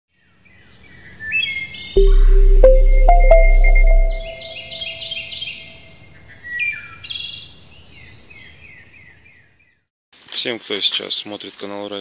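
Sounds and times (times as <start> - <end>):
ringing musical tone: 2.0 - 5.2.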